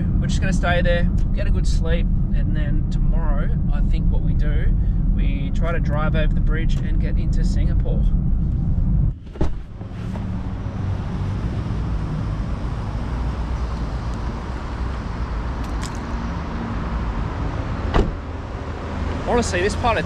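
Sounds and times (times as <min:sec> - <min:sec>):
road traffic noise: 0:00.0 - 0:20.0.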